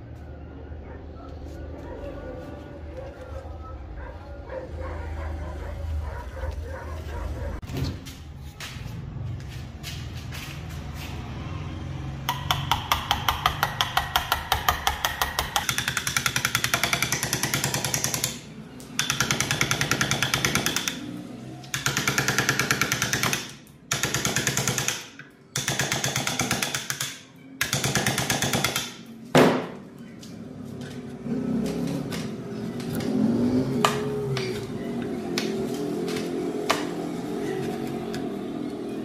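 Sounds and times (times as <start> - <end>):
chisel knocking into wood: 12.3 - 18.4.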